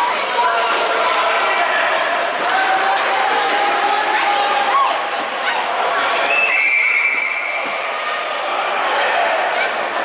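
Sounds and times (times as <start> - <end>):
background chatter: 0.0 - 10.0
shrill whistle: 6.3 - 7.6.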